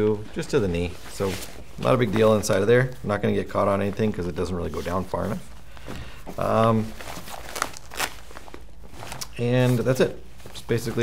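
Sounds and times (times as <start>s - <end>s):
fabric rustling: 0.3s - 11.0s.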